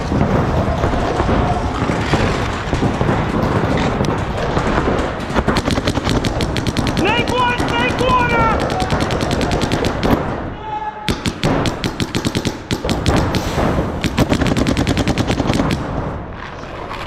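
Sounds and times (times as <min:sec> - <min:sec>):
paintball markers firing: 0:00.0 - 0:10.4, 0:11.1 - 0:16.1.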